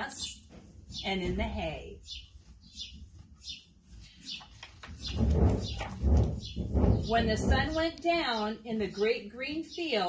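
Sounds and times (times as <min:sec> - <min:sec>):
page turning rustle: 0:04.3 - 0:06.4.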